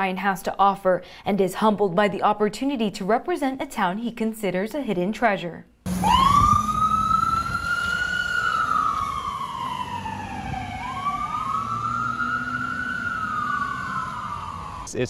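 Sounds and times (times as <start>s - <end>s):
low rumble: 5.9s - 11.6s
ambulance siren wailing: 5.9s - 15.0s.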